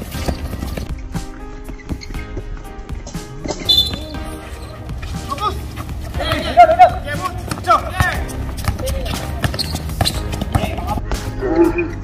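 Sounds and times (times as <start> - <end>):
referee's whistle blast: 3.6 - 4.2.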